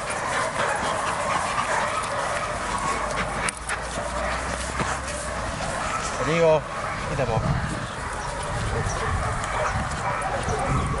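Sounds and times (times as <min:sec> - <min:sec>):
dog barking: 0:00.0 - 0:11.0.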